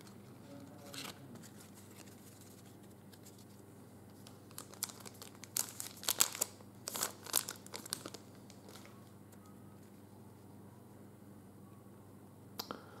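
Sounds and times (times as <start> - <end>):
foil wrapper tearing and crinkling: 4.5 - 8.9.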